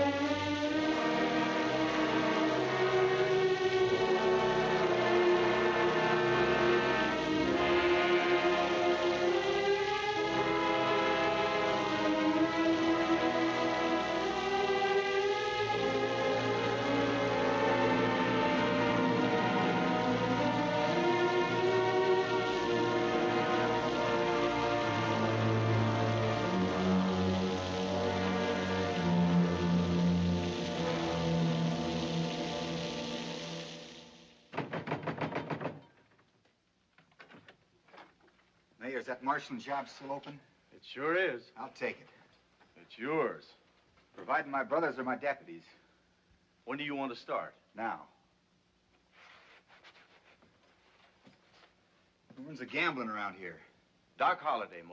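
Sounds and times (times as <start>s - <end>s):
bowed strings holding long notes: 0.0s - 34.2s
orchestral music sustained chords: 0.0s - 34.5s.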